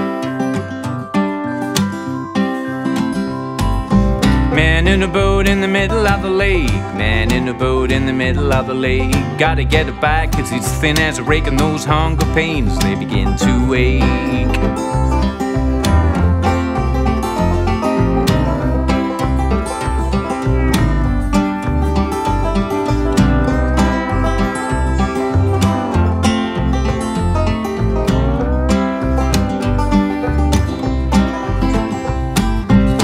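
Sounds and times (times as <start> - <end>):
acoustic guitar: 0.0 - 33.0
banjo strummed and picked: 0.0 - 33.0
plucked double bass: 3.6 - 33.0
lap steel guitar sliding notes: 10.5 - 33.0.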